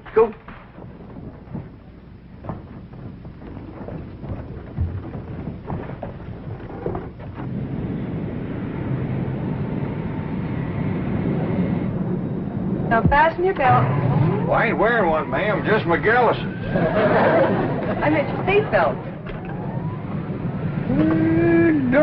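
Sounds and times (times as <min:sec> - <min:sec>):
high engine whine: 0:00.0 - 0:22.0
jet engines rumbling: 0:00.0 - 0:22.0.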